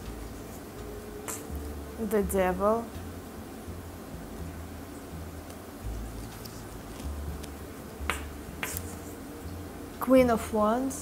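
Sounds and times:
card snapping: 1.2s - 1.5s, 6.2s - 9.0s.

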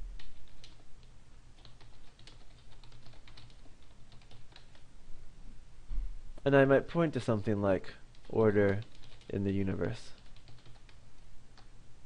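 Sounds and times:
keyboard typing clicks: 1.6s - 4.8s, 8.1s - 11.0s.

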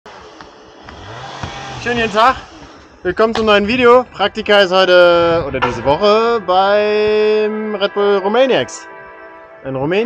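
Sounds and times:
low vehicle engine hum: 0.1s - 7.7s
footfalls on tyres: 1.3s - 2.8s
man speaking: 1.8s - 8.9s, 9.6s - 10.0s.

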